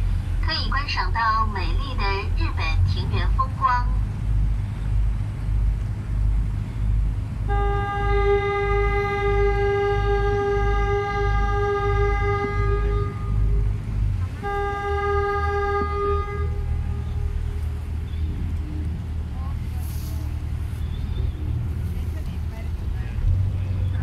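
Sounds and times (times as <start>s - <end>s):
boat engine rumbling: 0.0s - 24.0s
ship horn blasts: 0.0s - 24.0s.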